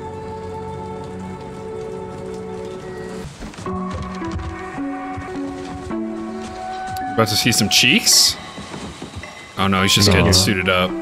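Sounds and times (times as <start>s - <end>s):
low musical drone: 9.9s - 11.0s.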